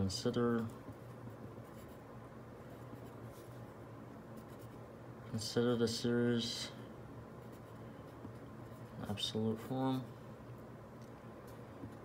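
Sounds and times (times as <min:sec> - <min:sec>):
pen scratching on paper: 0:00.9 - 0:02.0, 0:02.8 - 0:03.6, 0:04.4 - 0:04.8, 0:07.4 - 0:08.9.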